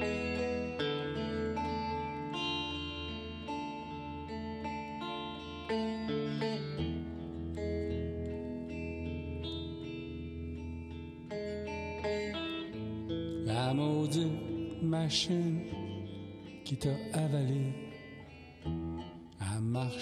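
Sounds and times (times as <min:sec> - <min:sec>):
guitar playing single notes: 0:00.0 - 0:20.0.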